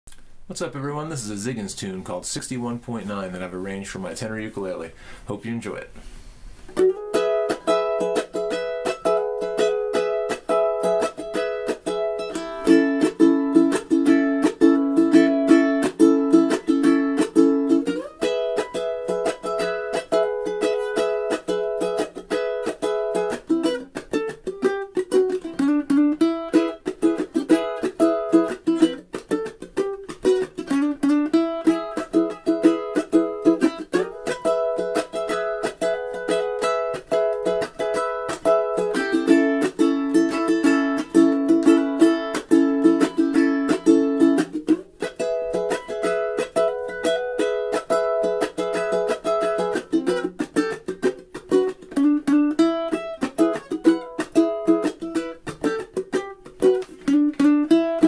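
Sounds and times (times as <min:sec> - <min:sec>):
ukulele picking surf tune: 0:00.1 - 0:58.0.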